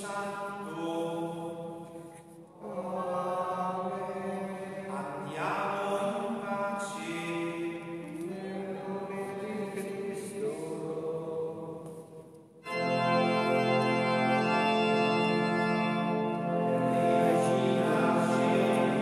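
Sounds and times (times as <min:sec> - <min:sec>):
chant sung in reverberant church: 0:00.0 - 0:19.0.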